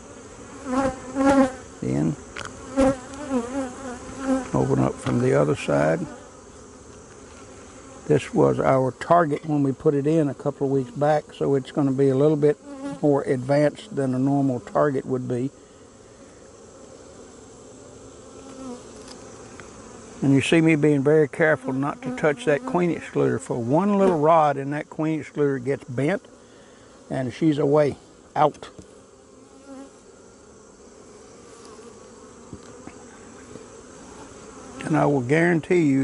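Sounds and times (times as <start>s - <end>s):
bee buzzing past close: 0.0s - 36.0s
bees buzzing: 0.0s - 36.0s
honeybees humming: 0.0s - 36.0s.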